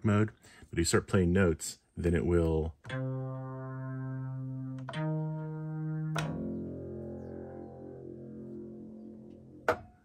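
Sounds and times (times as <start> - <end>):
synthesizer notes: 2.8 - 9.8.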